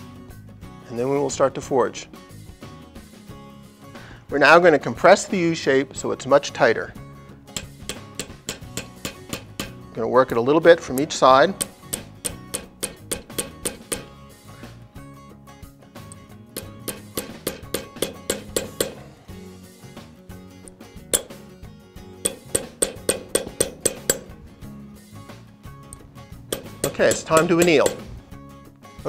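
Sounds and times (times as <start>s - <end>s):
hammer striking metal wire on anvil: 7.5s - 9.9s, 11.5s - 14.2s, 16.1s - 19.2s, 21.1s - 21.5s, 22.2s - 24.4s, 25.9s - 28.2s.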